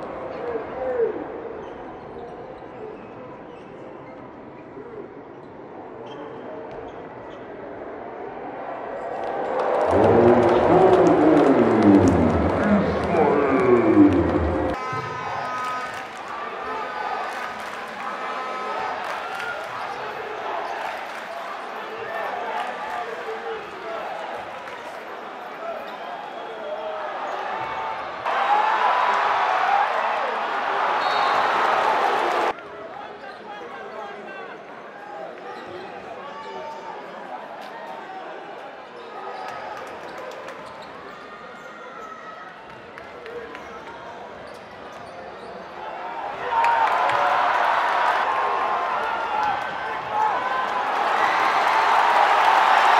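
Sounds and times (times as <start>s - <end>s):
arena crowd chatter: 0.0s - 52.9s.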